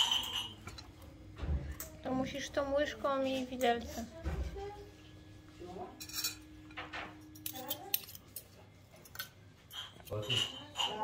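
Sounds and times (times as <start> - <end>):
metal utensils scraping glass platter: 0.0 - 0.9, 9.1 - 11.0.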